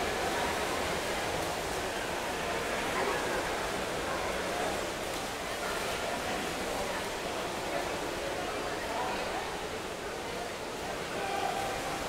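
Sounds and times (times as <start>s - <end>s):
faint indistinct voices: 0.0s - 12.0s
pool water splashing: 0.0s - 12.0s.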